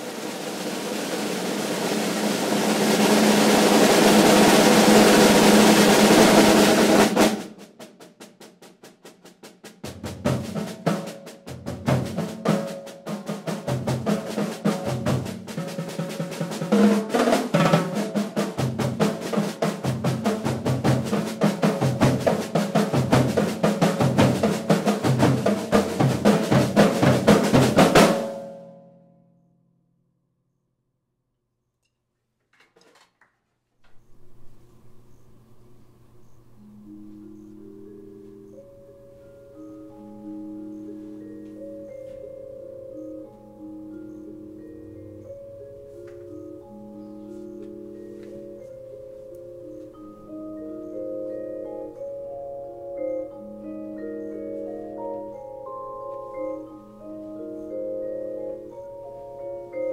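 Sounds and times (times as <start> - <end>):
snare and tom rhythm: 0.0 - 28.5
snare drum roll: 0.0 - 28.5.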